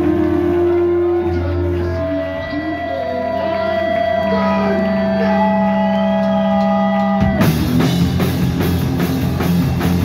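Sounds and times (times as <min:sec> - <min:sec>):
bass guitar: 0:00.0 - 0:10.0
electric guitars holding long notes: 0:00.0 - 0:10.0.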